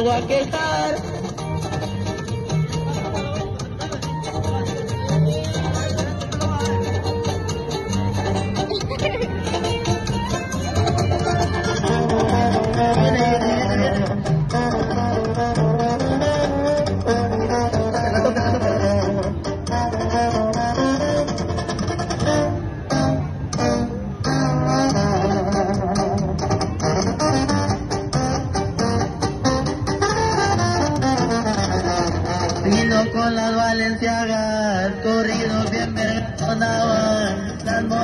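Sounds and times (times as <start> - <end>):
deep bass line: 0.0 - 38.0
plucked guitars: 0.0 - 38.0.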